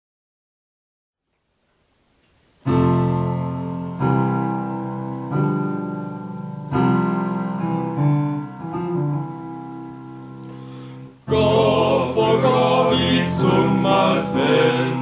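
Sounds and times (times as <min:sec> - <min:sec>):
electric piano chords: 0:02.6 - 0:15.0.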